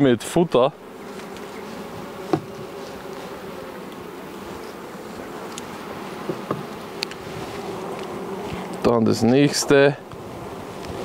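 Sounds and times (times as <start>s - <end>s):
honey bees buzzing: 0.0s - 11.0s
light knock on hive: 1.1s - 4.1s, 5.4s - 7.2s.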